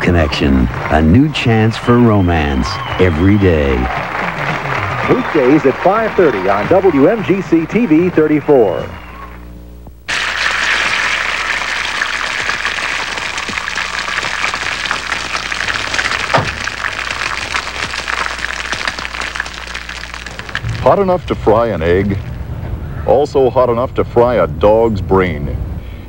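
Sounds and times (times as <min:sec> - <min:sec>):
eggs sizzling in a skillet: 0:10.1 - 0:22.4.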